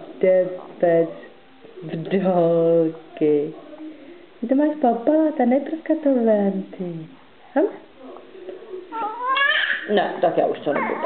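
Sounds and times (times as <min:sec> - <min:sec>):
baby whining: 0:08.9 - 0:09.9.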